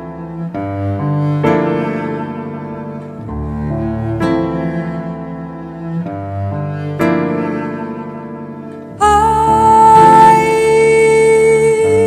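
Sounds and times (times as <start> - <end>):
bowed strings in slow chords: 0.0 - 12.0.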